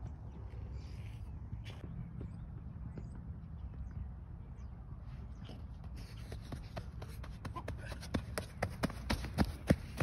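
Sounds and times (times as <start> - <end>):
running footsteps on dirt: 0.0 - 4.7, 5.3 - 10.0.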